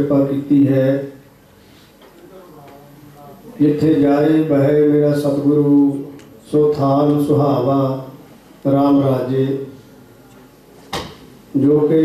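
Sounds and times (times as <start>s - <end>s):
sharp knock: 10.9s - 11.2s.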